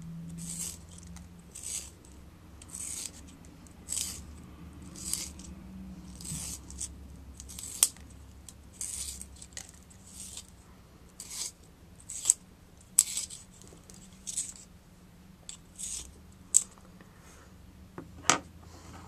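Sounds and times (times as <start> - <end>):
pencil sharpener scraping: 0.3 - 5.5, 6.1 - 8.0, 8.8 - 10.5, 11.2 - 12.4, 13.0 - 14.6, 15.5 - 16.2.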